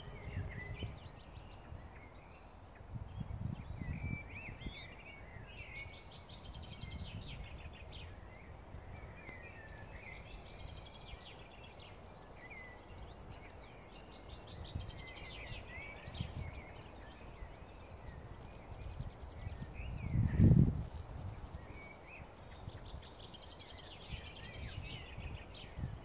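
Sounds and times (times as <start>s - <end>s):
songbirds chirping and trilling: 0.0s - 26.0s.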